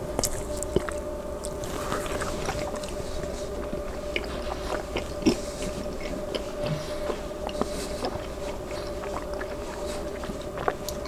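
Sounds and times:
chewing asparagus: 0:00.0 - 0:11.0
steady low hum: 0:00.0 - 0:11.0.

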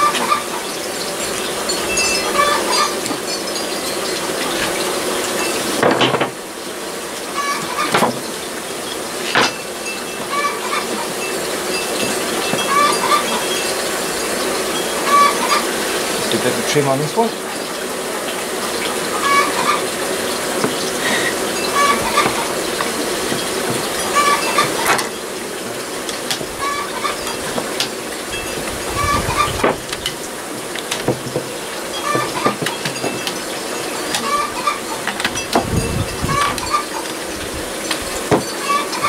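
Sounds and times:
hen clucking: 0:00.0 - 0:00.8, 0:02.2 - 0:03.1, 0:07.3 - 0:08.1, 0:10.2 - 0:11.2, 0:12.4 - 0:15.8, 0:18.8 - 0:25.2, 0:26.2 - 0:27.9, 0:28.6 - 0:30.1, 0:32.0 - 0:33.2, 0:34.0 - 0:35.1, 0:35.8 - 0:37.1, 0:38.6 - 0:39.0
bees humming: 0:00.0 - 0:39.0.

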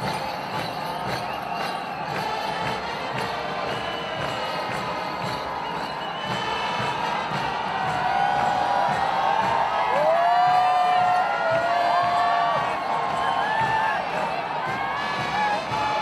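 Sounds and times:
music: 0:00.0 - 0:16.0
stadium crowd cheering: 0:00.0 - 0:16.0.

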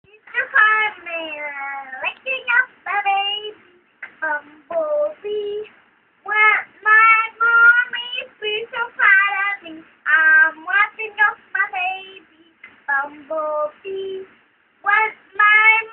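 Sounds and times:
girl singing: 0:00.1 - 0:15.9.

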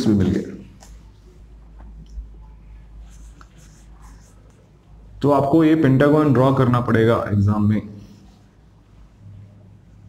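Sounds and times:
eraser wiping whiteboard: 0:03.0 - 0:04.6.

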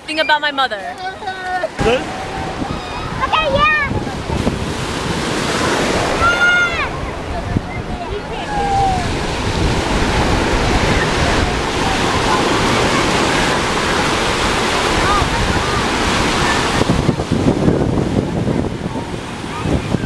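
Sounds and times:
ocean surf breaking on beach: 0:00.8 - 0:20.0.

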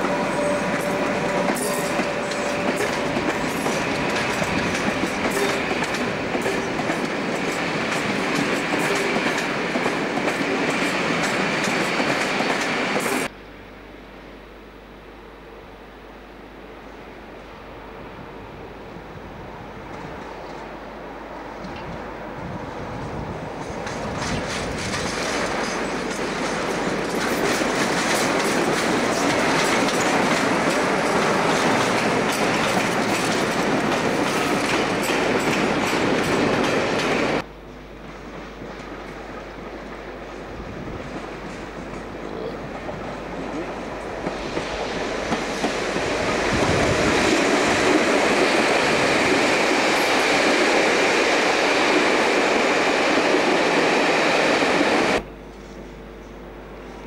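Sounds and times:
wheels clicking over rail joints: 0:00.0 - 0:13.2, 0:23.6 - 0:37.4
diesel locomotive passing: 0:00.0 - 0:13.3, 0:16.5 - 0:57.0
electric locomotive passing: 0:00.0 - 0:13.3, 0:16.4 - 0:57.0.

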